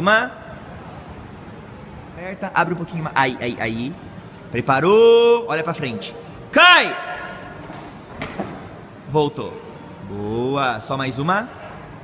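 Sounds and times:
gym hall background noise: 0.0s - 12.0s.

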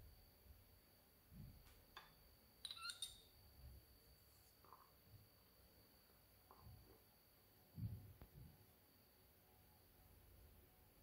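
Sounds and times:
faint high whine: 0.0s - 11.0s
spoon and cup clinking on glass bowl: 2.0s - 3.3s.

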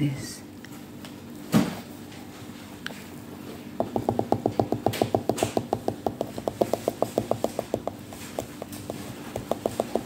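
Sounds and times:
fingers drumming on fruit rind: 3.8s - 10.0s.

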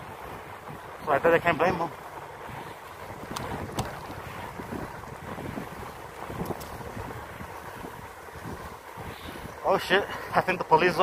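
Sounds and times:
road rumble: 0.0s - 11.0s
wind rushing over microphone: 0.0s - 11.0s
faint clicks: 3.2s - 4.2s, 6.2s - 6.9s.

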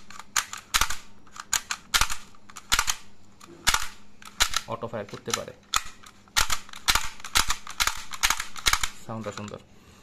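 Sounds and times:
toy blaster mechanism clicking: 0.0s - 9.6s.

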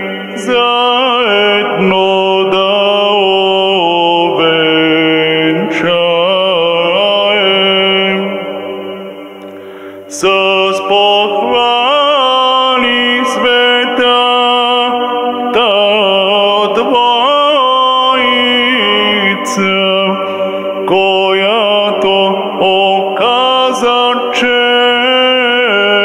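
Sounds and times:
man singing chant into microphone: 0.0s - 9.4s, 10.0s - 26.0s.

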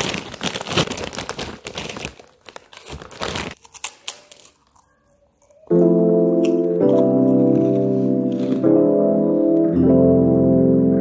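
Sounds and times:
plastic packet crinkling: 0.0s - 8.7s
keyboard music: 5.6s - 11.0s.

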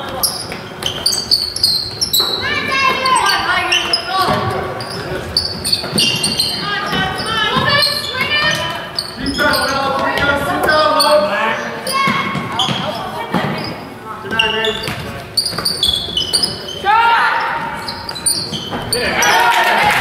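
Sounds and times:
basketball bouncing on hardwood: 5.5s - 9.4s
people shouting in echoing hall: 16.8s - 18.0s, 18.9s - 20.0s.

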